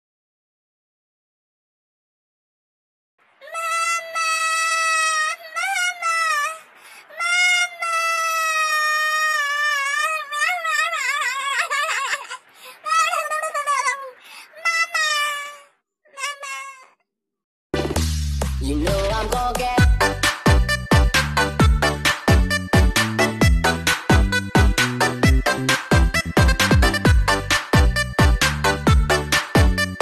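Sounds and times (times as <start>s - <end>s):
high-pitched voice-like cry: 3.4s - 17.0s.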